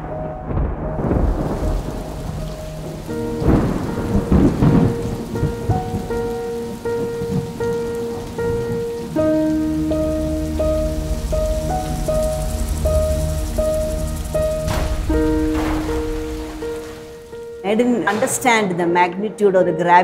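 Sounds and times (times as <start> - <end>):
soft melody of held notes: 0.0 - 18.1
heavy rain falling: 0.0 - 18.3
thunder rolling: 0.0 - 18.8.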